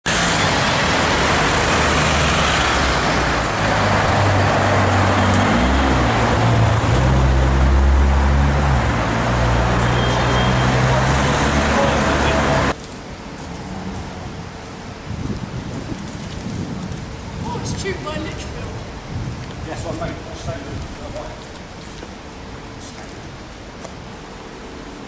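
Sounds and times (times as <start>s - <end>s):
city street traffic: 0.0s - 25.0s
low engine note rising: 0.1s - 12.8s.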